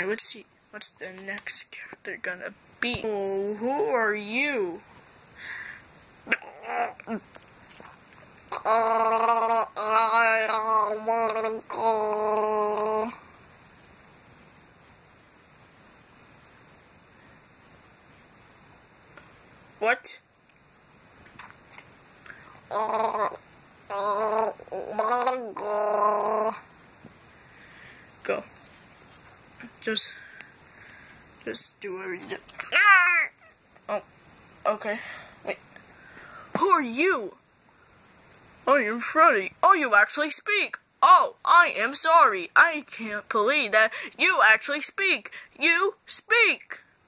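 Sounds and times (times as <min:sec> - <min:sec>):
squeaky swooping vocal sounds: 0:06.3 - 0:07.3, 0:22.7 - 0:26.6.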